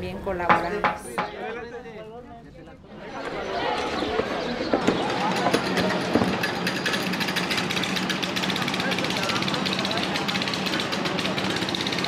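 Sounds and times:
faint voices: 0.0 - 12.0
engine running with chatter: 2.9 - 12.0.

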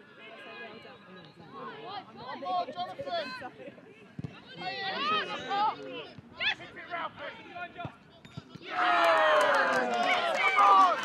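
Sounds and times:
crowd cheering and yelling: 8.6 - 11.0
players shouting: 8.6 - 11.0.

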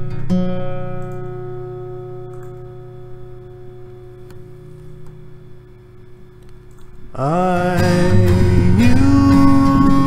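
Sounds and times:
acoustic guitar chord ringing: 0.0 - 6.0, 7.1 - 10.0.

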